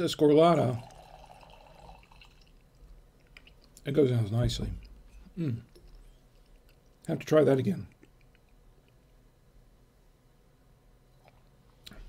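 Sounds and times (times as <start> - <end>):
wine pouring into glass: 0.6 - 2.7.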